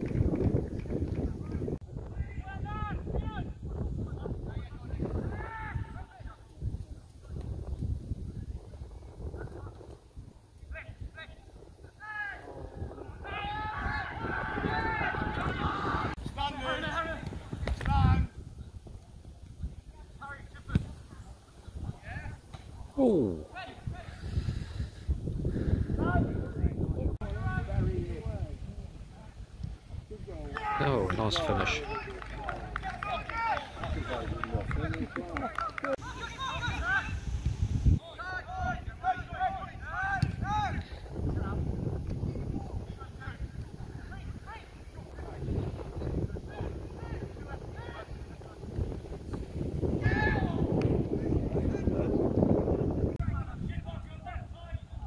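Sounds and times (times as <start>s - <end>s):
people calling and talking: 0.0s - 55.0s
players shouting: 13.2s - 17.3s, 30.4s - 37.2s.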